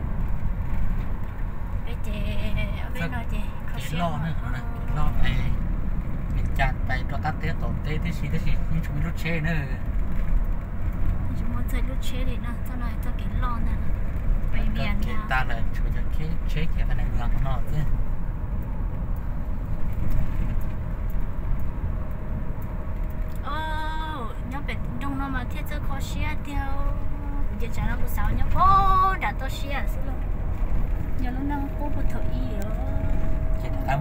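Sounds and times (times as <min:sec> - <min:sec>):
car engine and tyres rumbling: 0:00.0 - 0:34.0
people talking: 0:01.9 - 0:05.6, 0:11.3 - 0:13.9, 0:14.6 - 0:17.9, 0:23.4 - 0:30.2, 0:31.2 - 0:34.0.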